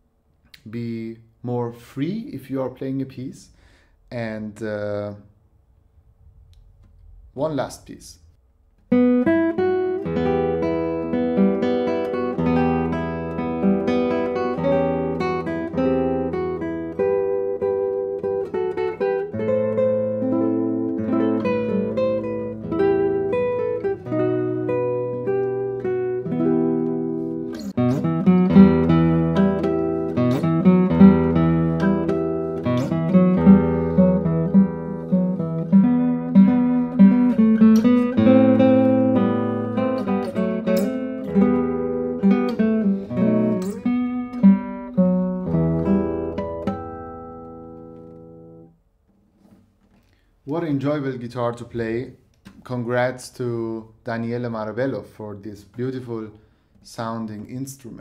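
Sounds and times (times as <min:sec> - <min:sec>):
fingerpicked classical guitar: 0:08.9 - 0:50.2.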